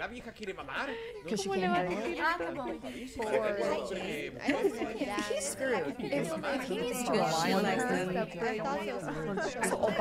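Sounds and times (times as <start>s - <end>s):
several people talking at once: 0.0s - 10.0s.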